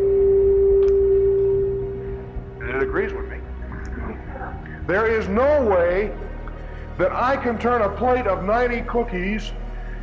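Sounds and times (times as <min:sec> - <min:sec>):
steady mid-pitched tone: 0:00.0 - 0:04.6.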